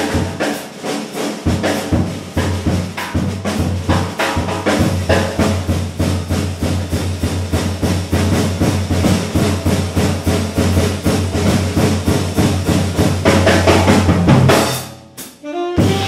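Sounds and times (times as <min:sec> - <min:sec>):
busy drum kit: 0:00.0 - 0:16.0.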